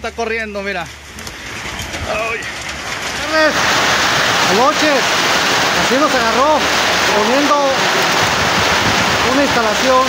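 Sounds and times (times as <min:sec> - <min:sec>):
heavy rain on a roof: 0:01.3 - 0:10.0.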